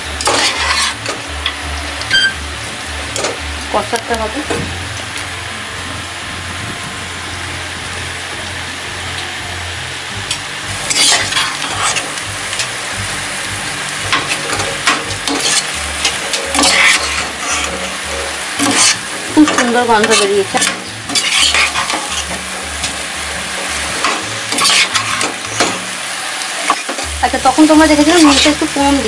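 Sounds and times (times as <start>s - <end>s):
meat sizzling in a pot: 0.0s - 29.0s
metal spatula scraping a pot: 0.2s - 1.2s, 10.8s - 12.2s, 14.2s - 25.9s.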